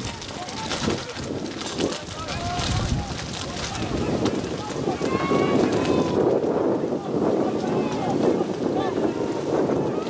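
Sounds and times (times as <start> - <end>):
wind on microphone: 0.0 - 10.0
distant shouts: 3.6 - 10.0.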